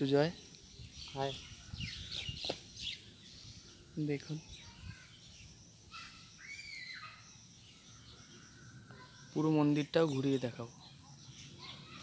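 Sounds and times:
bird calls: 0:00.0 - 0:12.0
faint outdoor ambience: 0:00.0 - 0:12.0.

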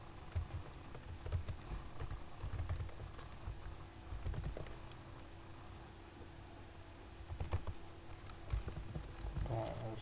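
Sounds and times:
keyboard typing: 0:00.3 - 0:05.0, 0:07.3 - 0:10.0
person speaking: 0:09.4 - 0:10.0.

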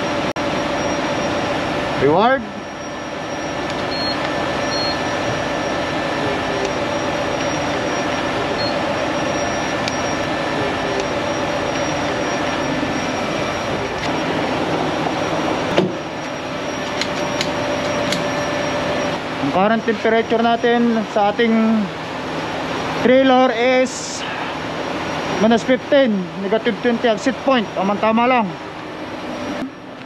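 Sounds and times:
engine droning: 0:00.0 - 0:30.0.

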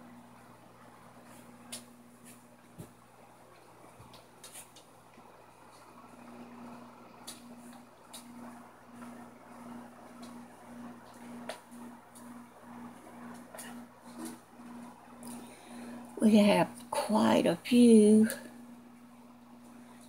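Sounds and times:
low steady hum: 0:00.0 - 0:20.0
pulsing higher hum: 0:05.1 - 0:20.0.

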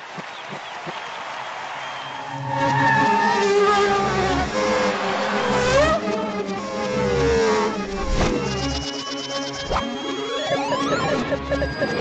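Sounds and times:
engine-like tone sliding down: 0:02.1 - 0:12.0.

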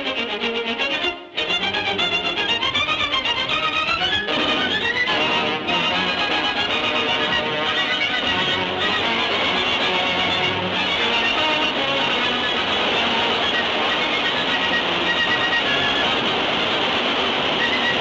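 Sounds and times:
orchestral score with violins: 0:00.0 - 0:18.0.

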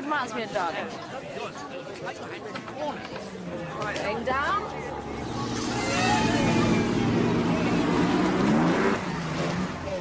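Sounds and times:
racing car engine accelerating: 0:04.8 - 0:09.8.

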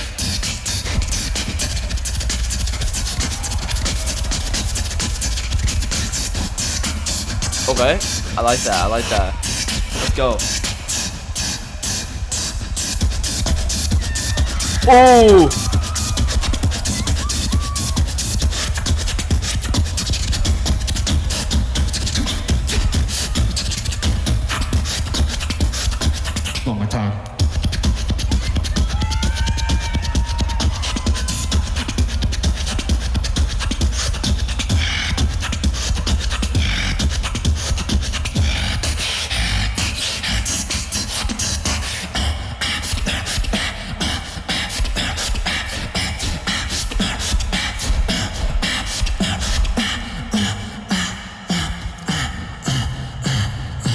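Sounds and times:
beatboxing: 0:00.0 - 0:53.9
pitched vocal lines: 0:14.7 - 0:15.8, 0:42.1 - 0:53.9.

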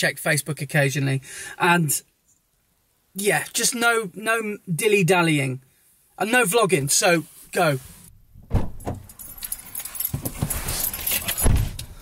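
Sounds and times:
clothes rustling against seat: 0:07.2 - 0:11.8
car keys jangling: 0:08.8 - 0:11.9.

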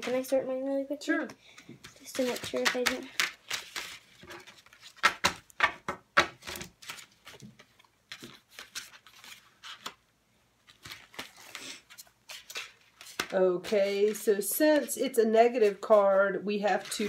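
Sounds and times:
cards clicking on table: 0:02.2 - 0:03.9.

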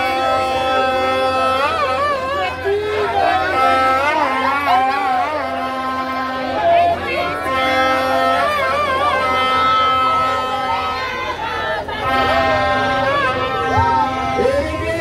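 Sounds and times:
crowd noise: 0:00.0 - 0:15.0
man singing with vibrato: 0:00.0 - 0:15.0
music with long held notes: 0:00.0 - 0:15.0.

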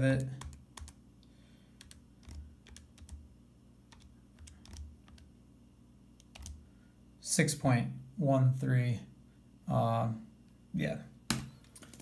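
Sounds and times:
calculator keys clicking: 0:01.8 - 0:03.2, 0:03.9 - 0:05.2, 0:06.2 - 0:06.6.

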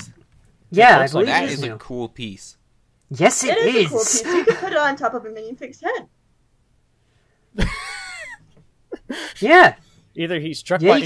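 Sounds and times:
person laughing: 0:07.6 - 0:09.4.

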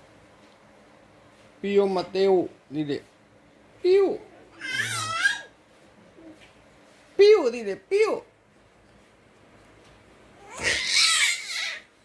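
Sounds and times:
baby squealing: 0:04.6 - 0:05.5, 0:10.4 - 0:11.9.

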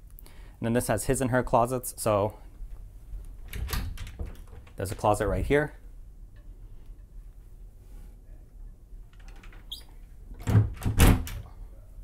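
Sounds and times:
low steady hum: 0:00.0 - 0:12.0
closet door squeaking: 0:09.2 - 0:11.4.

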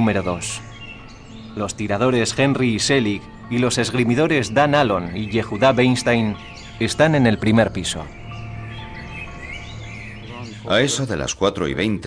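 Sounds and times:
sustained background music: 0:00.0 - 0:12.0.

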